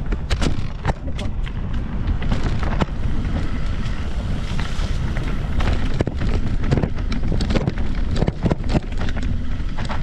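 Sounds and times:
bike clicks and rattles: 0.0 - 10.0
wind buffeting microphone: 0.0 - 10.0.

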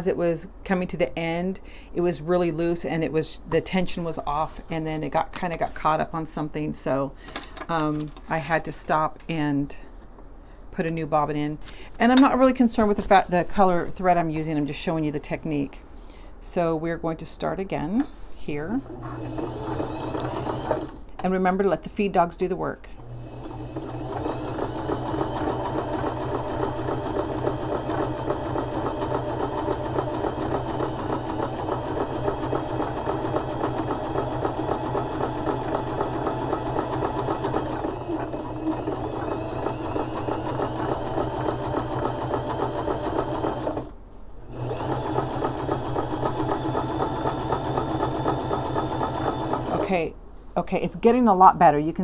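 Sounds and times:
sewing machine stitching: 18.9 - 21.1, 23.0 - 43.9, 44.5 - 50.0.

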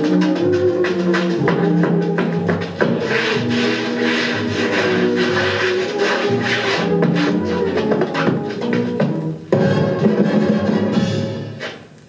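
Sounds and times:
orchestra playing dance music: 0.0 - 11.8.

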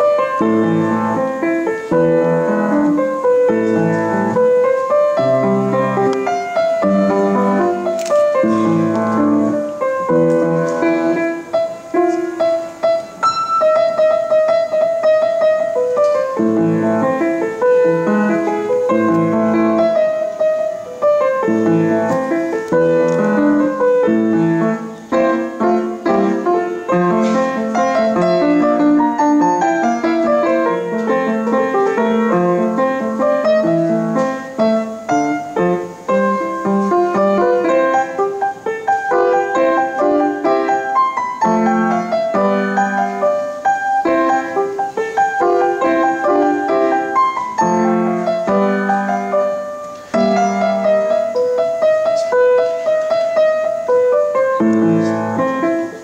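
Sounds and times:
solo grand piano piece: 0.0 - 56.0.

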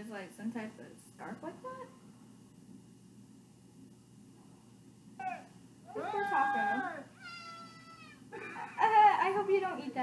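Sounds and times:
cat-like animal cries: 5.2 - 8.3.

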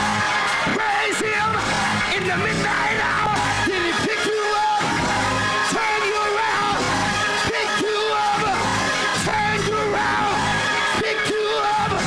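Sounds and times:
slowed low-pitched gospel music: 0.0 - 12.0
steady bass: 0.0 - 12.0
man shouting and singing: 0.6 - 4.9, 5.6 - 12.0.

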